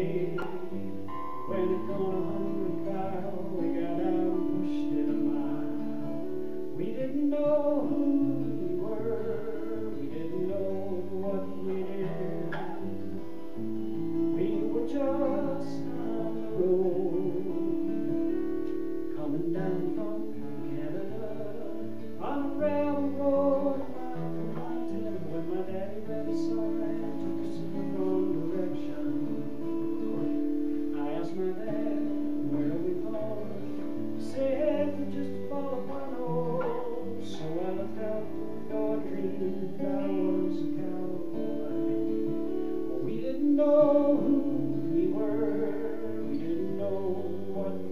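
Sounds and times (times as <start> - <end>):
acoustic guitar strumming: 0.0 - 47.9.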